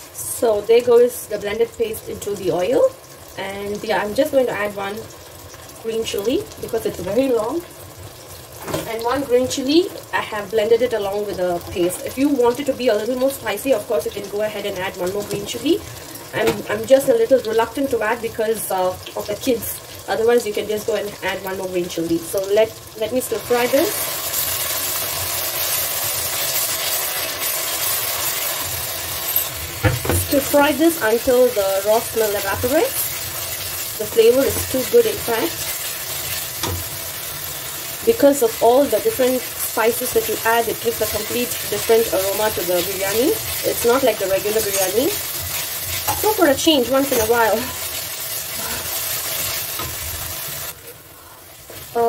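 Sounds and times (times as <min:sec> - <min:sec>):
spice paste sizzling in oil: 0:00.0 - 0:52.0.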